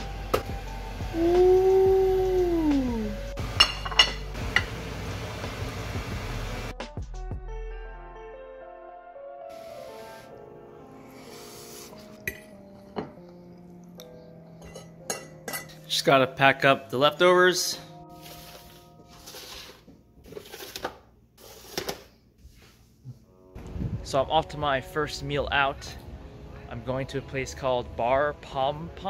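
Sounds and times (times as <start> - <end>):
soft background music: 0.0 - 29.0
person saying ooh: 1.1 - 3.3.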